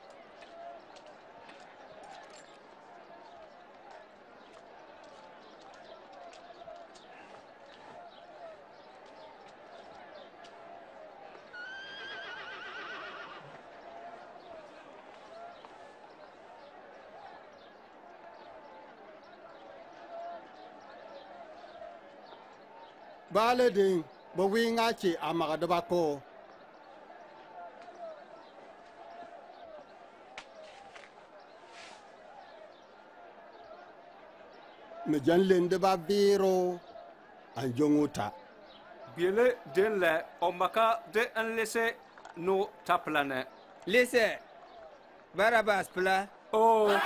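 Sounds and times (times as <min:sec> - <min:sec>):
murmur of voices: 0:00.0 - 0:47.0
horse whinnying: 0:11.6 - 0:13.5.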